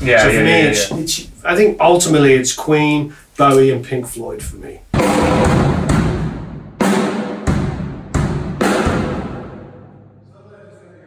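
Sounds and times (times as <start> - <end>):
drum kit hits with cymbal crashes: 4.9 - 9.9.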